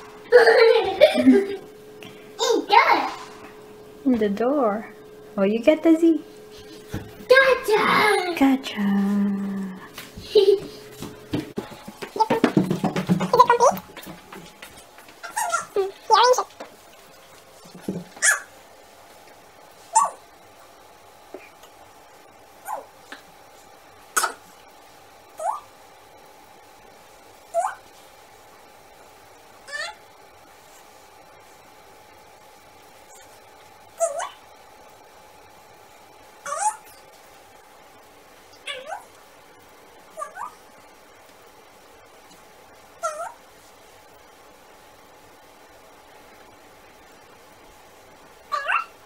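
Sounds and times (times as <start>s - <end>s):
short sharp yelps: 19.9s - 20.2s, 48.5s - 48.9s.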